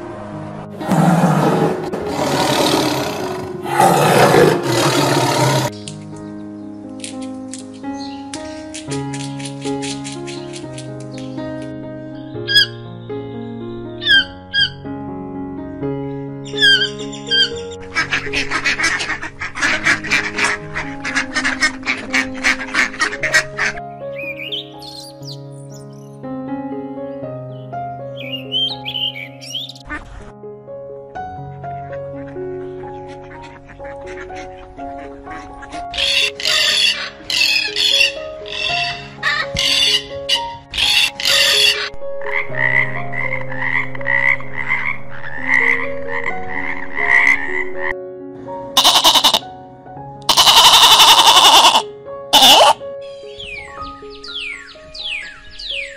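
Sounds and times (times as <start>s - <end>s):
background music: 0.0s - 55.9s
lion roaring: 0.8s - 5.7s
harsh bird calls: 0.8s - 5.9s, 12.3s - 12.9s, 14.0s - 14.8s, 16.5s - 25.4s, 28.2s - 30.0s, 35.9s - 41.9s, 48.8s - 49.4s, 50.3s - 51.8s, 52.4s - 55.9s
blackbird whistled song: 8.0s - 8.3s, 12.2s - 14.8s, 16.4s - 17.8s, 24.2s - 26.1s, 28.2s - 29.8s, 52.4s - 55.9s.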